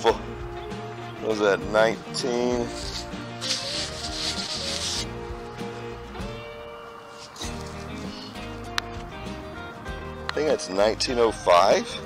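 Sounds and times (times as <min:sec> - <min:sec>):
background music: 0:00.0 - 0:12.0
thumb scuffing coin: 0:02.7 - 0:05.1.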